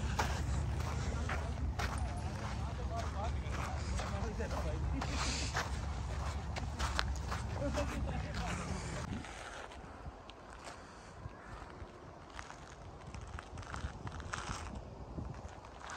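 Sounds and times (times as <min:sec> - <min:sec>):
faint voices: 0:00.0 - 0:12.1
footsteps on gravel: 0:00.0 - 0:15.9.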